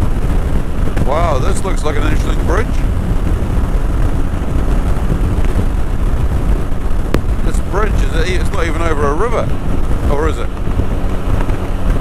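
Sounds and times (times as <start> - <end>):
motorcycle engine: 0.0 - 12.0
wind buffeting microphone: 0.0 - 12.0.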